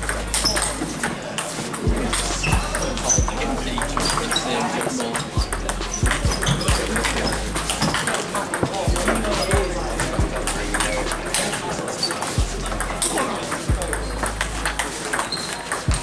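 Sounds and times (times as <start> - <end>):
voices: 0.0 - 16.0
table tennis ball clicks: 10.4 - 16.0.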